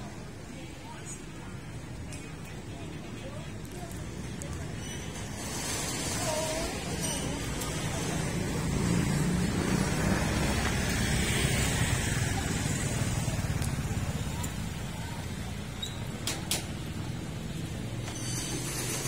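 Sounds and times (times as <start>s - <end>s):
vehicle engine and tyre rumble: 3.4s - 19.0s.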